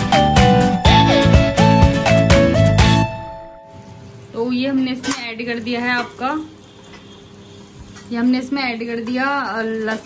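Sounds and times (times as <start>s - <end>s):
food sizzling in oil: 3.6s - 10.0s.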